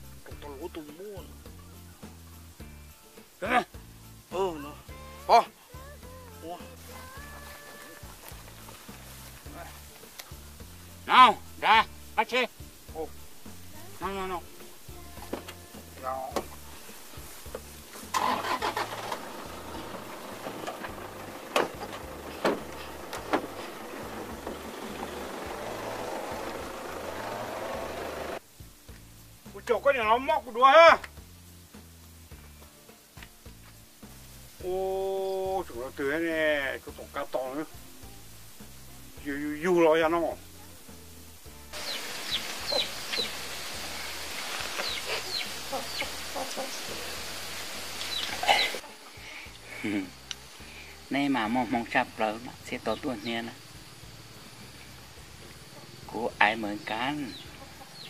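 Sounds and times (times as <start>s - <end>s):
steady hiss: 0.0s - 58.0s
truck engine cranking and running: 18.1s - 28.4s
short high falling calls: 41.8s - 47.3s
chickens clucking: 41.8s - 49.3s, 55.4s - 56.0s, 56.9s - 58.0s.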